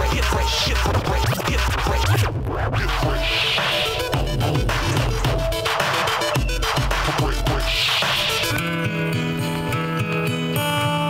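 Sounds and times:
turntable scratching: 0:00.0 - 0:08.8
hip-hop beat with bass line: 0:00.0 - 0:11.0.

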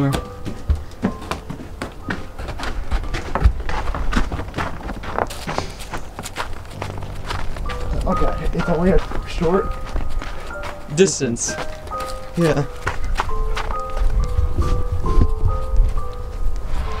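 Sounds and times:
background music: 0:00.0 - 0:17.0
footsteps crunching in snow: 0:00.2 - 0:17.0.

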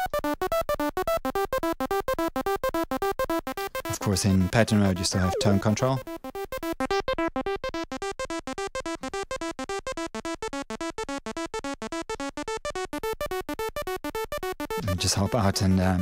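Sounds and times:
synth looping buzzy notes: 0:00.0 - 0:16.0.

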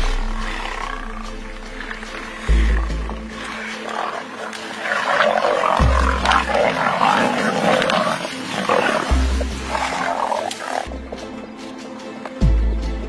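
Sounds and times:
lions growling: 0:00.0 - 0:11.4
background music: 0:00.0 - 0:13.0.

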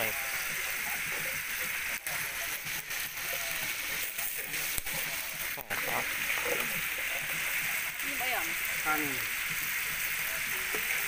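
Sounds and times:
food sizzling over wood fire: 0:00.0 - 0:11.0.

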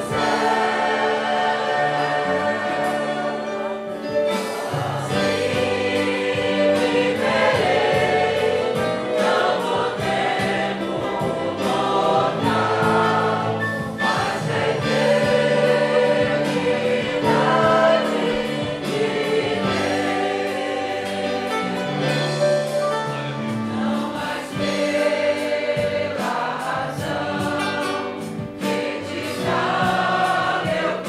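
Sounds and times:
congregation singing a hymn: 0:00.0 - 0:31.0.

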